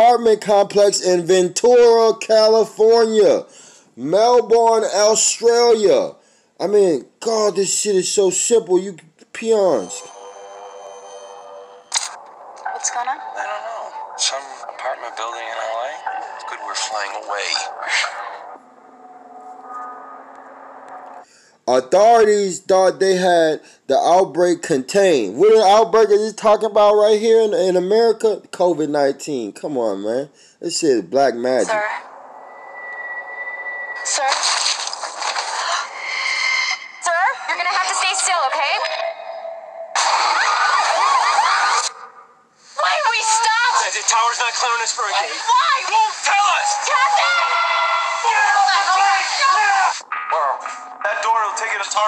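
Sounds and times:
person speaking: 0:06.6 - 0:10.1
steady drone tones: 0:09.8 - 0:21.3, 0:31.7 - 0:34.3, 0:50.0 - 0:52.0
sharp hit: 0:50.0 - 0:52.0.

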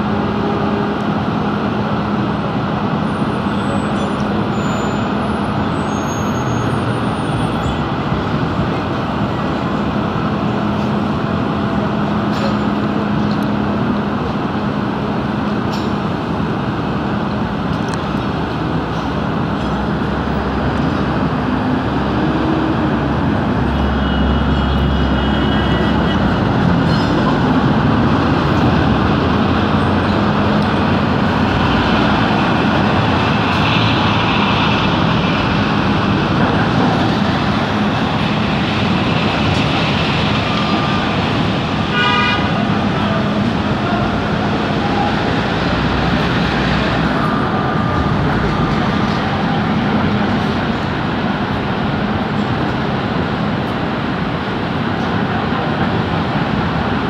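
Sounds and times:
city traffic: 0:00.0 - 0:57.0
construction machinery: 0:00.0 - 0:57.0.

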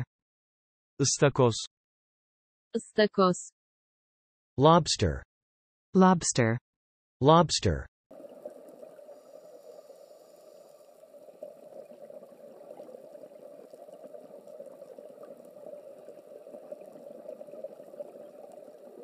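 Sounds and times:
underwater bubbling rush: 0:08.1 - 0:19.0.

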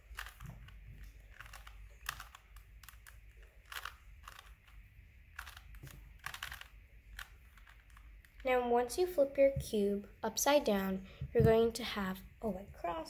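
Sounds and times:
puzzle cube clicking as turned: 0:00.1 - 0:08.4.

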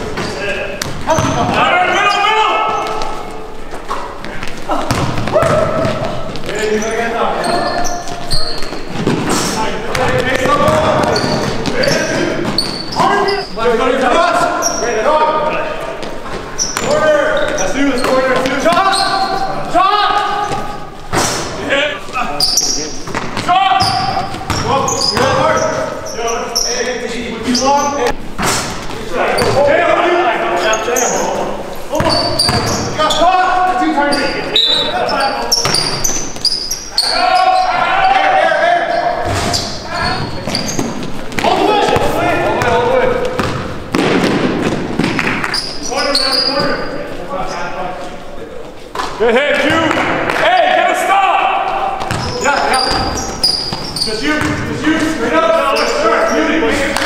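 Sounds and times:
basketball bouncing on court: 0:00.0 - 0:01.6, 0:04.2 - 0:13.4, 0:23.0 - 0:25.9, 0:28.7 - 0:29.6, 0:31.9 - 0:33.2, 0:35.5 - 0:36.5, 0:39.2 - 0:45.6, 0:52.0 - 0:54.8
players calling out: 0:00.0 - 0:47.8, 0:48.8 - 0:57.0.

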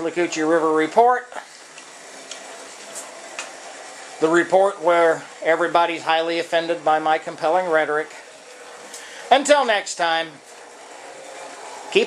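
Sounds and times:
model train humming: 0:00.0 - 0:12.0.

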